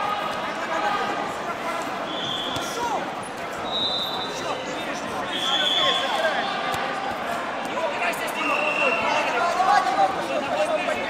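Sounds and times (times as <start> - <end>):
many voices talking and calling: 0.0 - 11.0.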